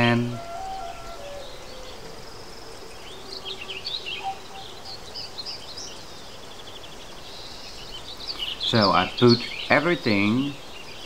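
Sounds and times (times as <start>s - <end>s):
faint steady hiss: 0.0s - 11.0s
fast ticking bird notes: 0.0s - 11.0s
small birds chirping: 0.0s - 11.0s.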